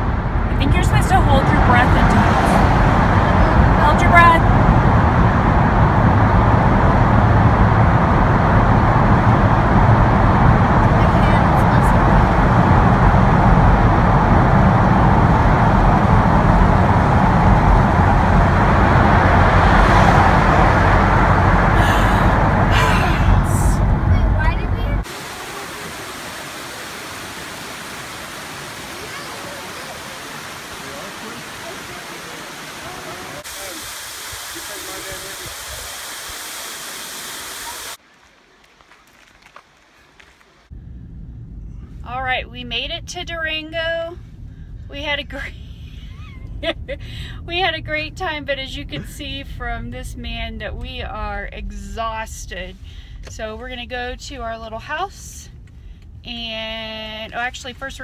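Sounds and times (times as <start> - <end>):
car road noise inside cabin: 0.0 - 33.9, 40.5 - 58.0.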